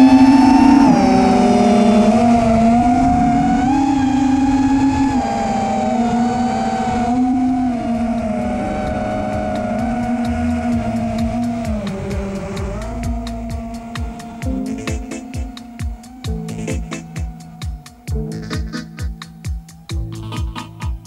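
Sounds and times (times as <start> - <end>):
quadcopter motors whining: 0.0 - 21.0.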